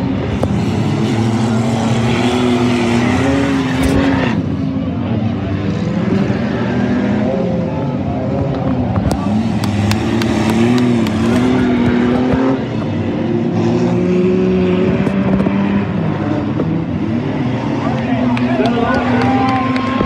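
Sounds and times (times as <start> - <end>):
race car engines revving: 0.0 - 20.0.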